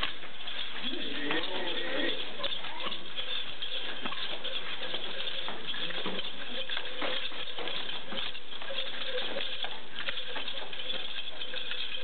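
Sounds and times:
footsteps on foam mats: 0:00.0 - 0:12.0.

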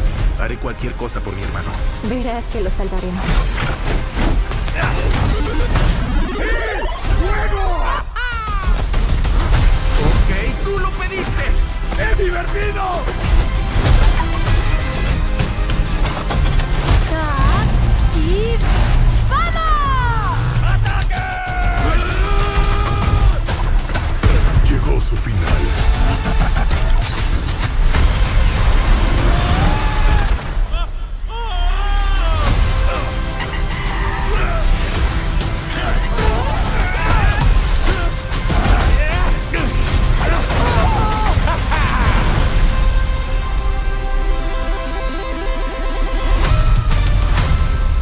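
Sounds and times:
trailer music: 0:00.0 - 0:48.0.

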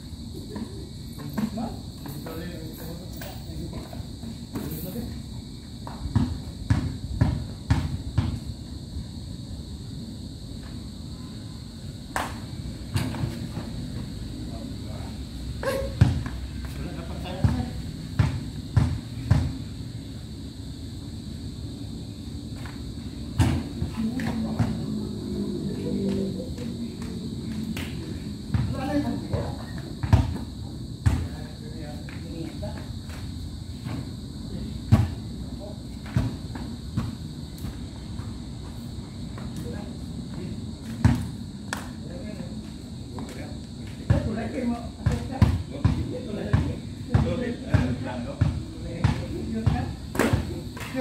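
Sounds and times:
men talking: 0:00.4 - 0:05.2
basketball thudding: 0:17.4 - 0:19.6, 0:23.4 - 0:23.8.

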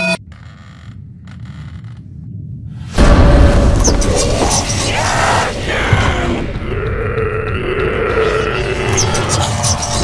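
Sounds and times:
person growling like a zombie: 0:05.7 - 0:09.4.

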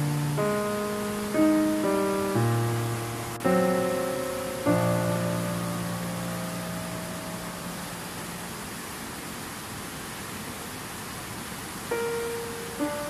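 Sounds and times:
piano notes: 0:00.0 - 0:08.7, 0:11.9 - 0:13.0
stream water rushing: 0:00.0 - 0:13.0.

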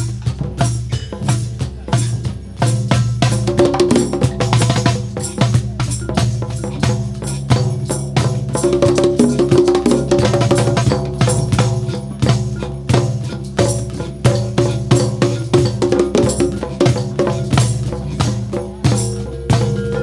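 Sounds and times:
hand drums: 0:00.0 - 0:20.0.

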